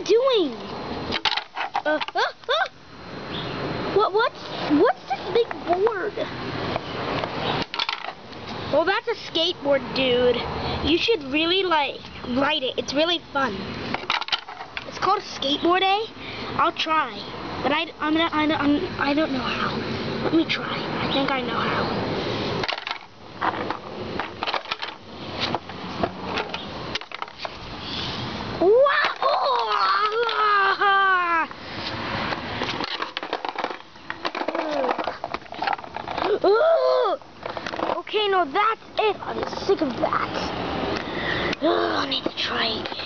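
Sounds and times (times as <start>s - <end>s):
skateboard on brick paving: 31.8s - 36.6s.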